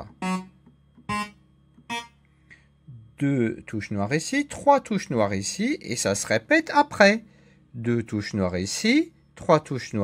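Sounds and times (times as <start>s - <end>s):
synthesizer keyboard single notes: 0.0s - 2.2s.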